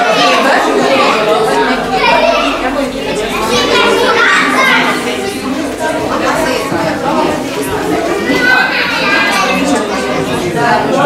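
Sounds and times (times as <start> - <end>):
crowd of adults talking: 0.0 - 11.0
young children speaking: 0.0 - 11.0.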